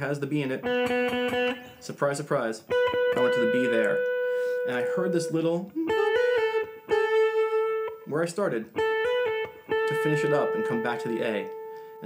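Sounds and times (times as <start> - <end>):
electric guitar melody: 0.3 - 12.0.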